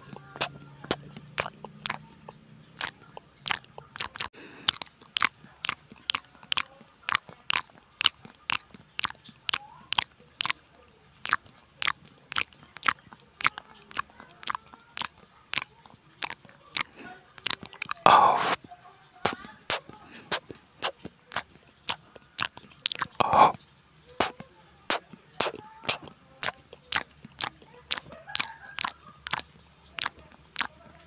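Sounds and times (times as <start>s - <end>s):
close chewing with crunches: 0.0s - 31.0s.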